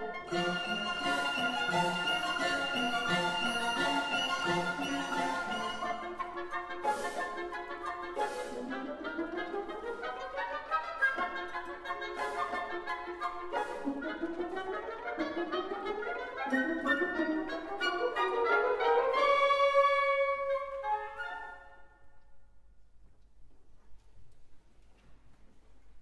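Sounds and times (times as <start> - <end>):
symphony orchestra playing: 0.0 - 21.8.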